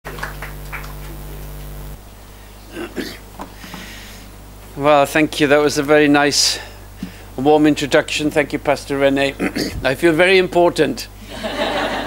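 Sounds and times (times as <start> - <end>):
low electrical hum: 0.1 - 12.0.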